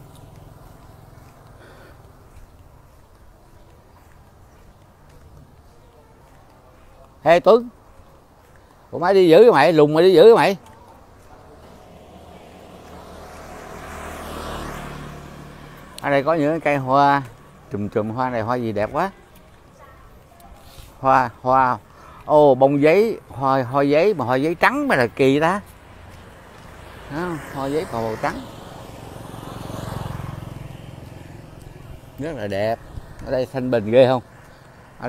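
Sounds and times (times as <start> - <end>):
motor scooter passing: 0.0 - 35.0.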